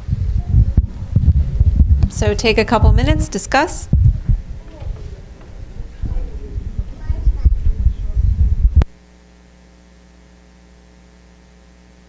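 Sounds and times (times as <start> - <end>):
microphone handling thumps: 0.0 - 9.0.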